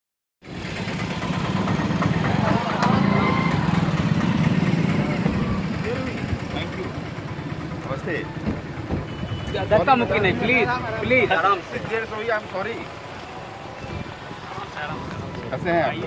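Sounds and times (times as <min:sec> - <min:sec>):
car engine running: 0:00.5 - 0:09.4
voices in background: 0:02.3 - 0:16.0.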